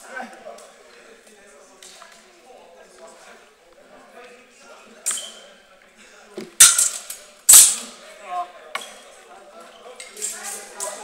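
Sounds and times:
sword blades clashing: 6.6s - 8.0s.

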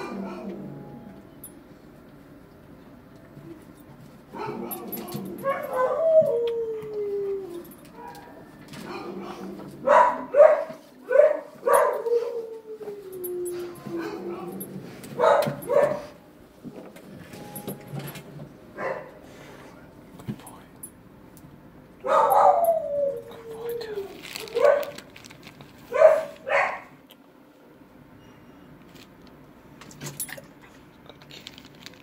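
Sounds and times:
dog barking: 4.3s - 6.0s, 9.8s - 12.3s, 15.2s - 16.2s, 18.8s - 19.2s, 22.0s - 22.8s, 24.4s - 25.0s, 25.9s - 27.0s
dog crying: 4.4s - 14.6s, 22.0s - 24.9s.

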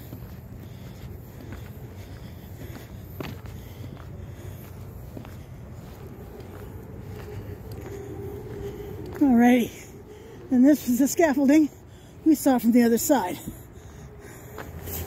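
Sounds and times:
footsteps on snowy pavement: 0.0s - 15.0s
low background rumble: 0.0s - 15.0s.

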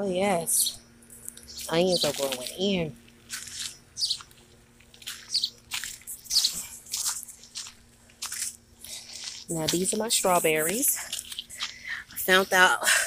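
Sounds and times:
footsteps crunching on gravel: 1.5s - 12.8s.

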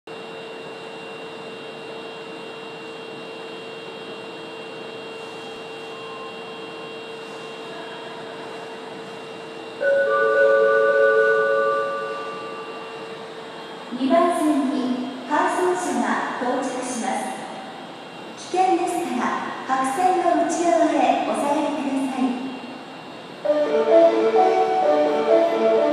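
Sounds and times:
subway platform hum: 0.1s - 25.9s
electronic chime melody: 9.8s - 13.1s.

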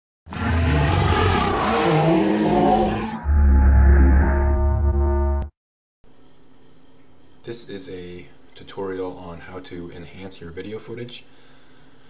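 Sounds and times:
deep horn-like tone: 0.3s - 5.5s
noisy rush with gliding pitch: 0.4s - 5.5s
heavy low rumble: 2.8s - 5.5s.

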